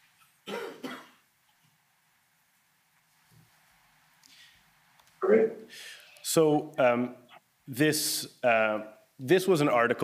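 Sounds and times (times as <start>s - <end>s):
person coughing: 0.4s - 1.2s.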